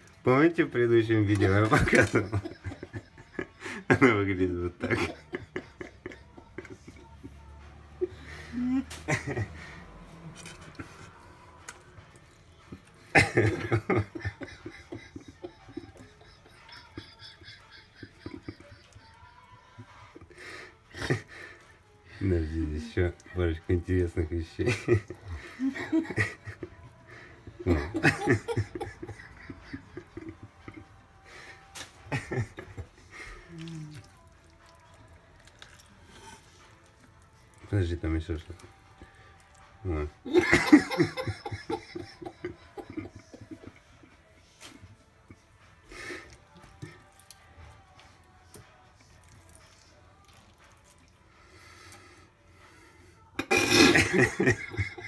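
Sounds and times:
person laughing: 1.4s - 7.2s, 8.0s - 9.8s, 13.1s - 21.4s, 24.6s - 34.0s, 39.9s - 44.2s, 53.4s - 55.0s
person chuckling quietly: 1.6s - 9.8s, 13.1s - 21.5s, 39.9s - 47.1s.

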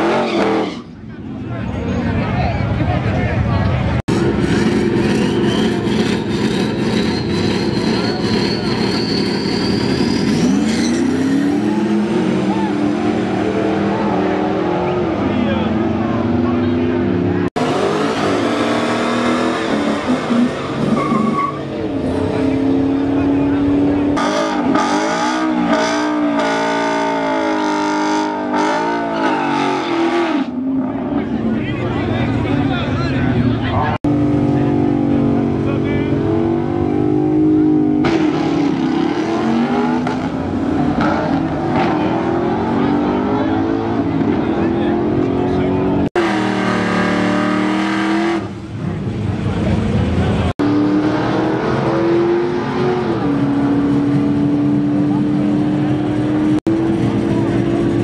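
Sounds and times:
drag car engine revving: 4.0s - 58.0s.

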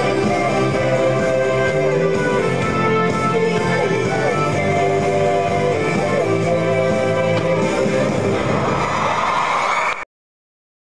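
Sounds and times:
crowd cheering: 7.6s - 10.1s.

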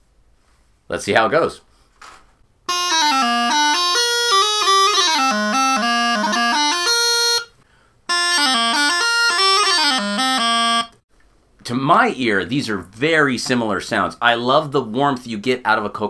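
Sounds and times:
practice chanter playing pipe phrases: 2.7s - 7.5s, 8.1s - 11.0s.

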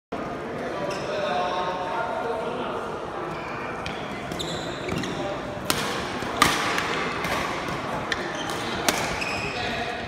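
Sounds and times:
racket striking shuttlecock: 5.6s - 9.2s.

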